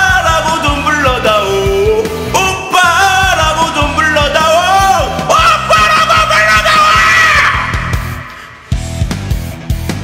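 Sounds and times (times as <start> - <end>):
man singing a held high note: 0.0 - 8.7
rock backing track with drums: 7.5 - 10.0.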